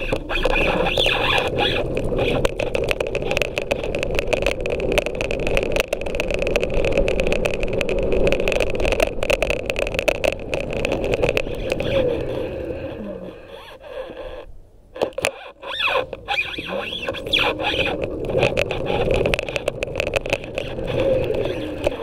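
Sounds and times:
clicks and rattles over bumps: 0:00.0 - 0:13.0, 0:13.7 - 0:22.0
scooter wheels whine and rumble: 0:00.0 - 0:22.0.

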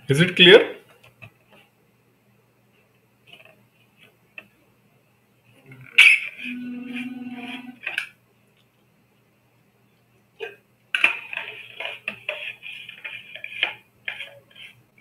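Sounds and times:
man vocal noise: 0:06.4 - 0:07.8.

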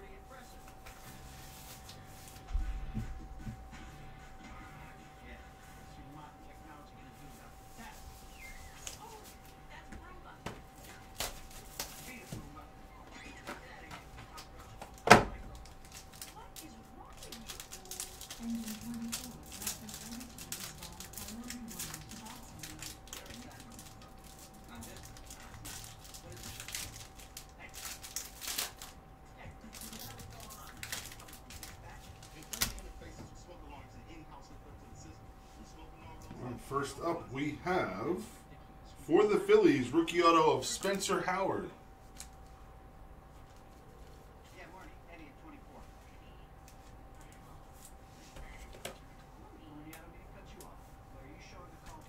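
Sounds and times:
faint steady hum: 0:00.0 - 0:52.0
plastic wrap tearing and crackling: 0:11.0 - 0:12.2, 0:14.8 - 0:29.0, 0:29.6 - 0:32.9.

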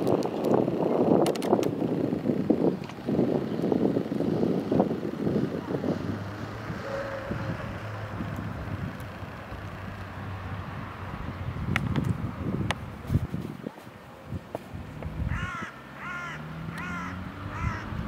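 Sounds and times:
distant traffic rumble: 0:00.0 - 0:18.0
wind on microphone: 0:00.0 - 0:18.0
crow cawing: 0:15.3 - 0:18.0.

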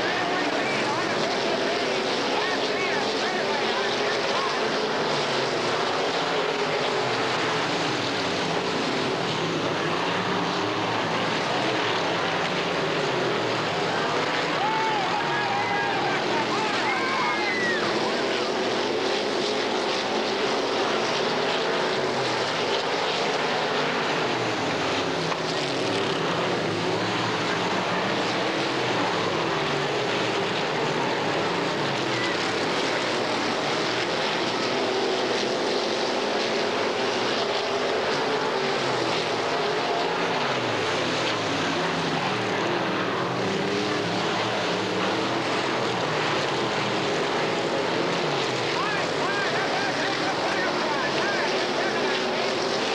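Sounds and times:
race car engines passing: 0:00.0 - 0:52.9.

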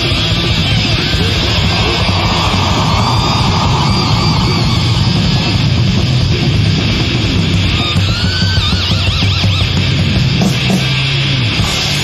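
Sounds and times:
death metal band playing: 0:00.0 - 0:12.0
distorted electric guitar: 0:00.0 - 0:12.0.

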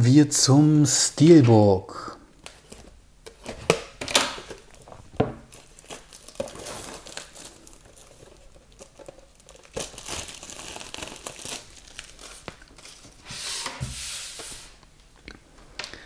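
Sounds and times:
plastic wrapping crinkling: 0:02.4 - 0:13.2.

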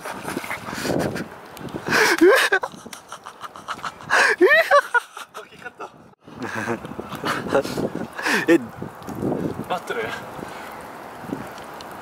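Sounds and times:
man gasping and panting: 0:01.8 - 0:02.4, 0:03.8 - 0:04.4.

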